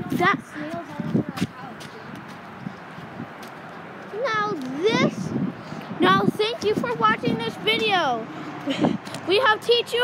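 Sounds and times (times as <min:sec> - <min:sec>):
footsteps on dry grass: 0:00.7 - 0:04.8.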